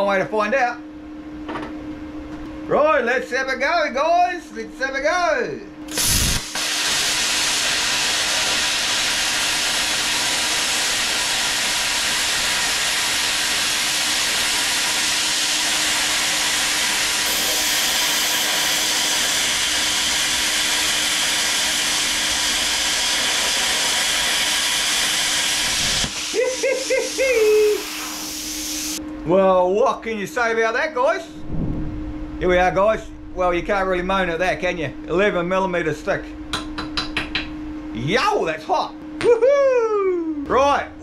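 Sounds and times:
plasma cutter hissing: 0:05.9 - 0:29.0.

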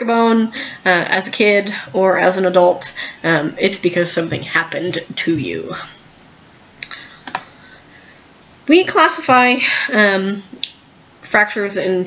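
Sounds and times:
computer mouse clicks: 0:06.8 - 0:07.5.

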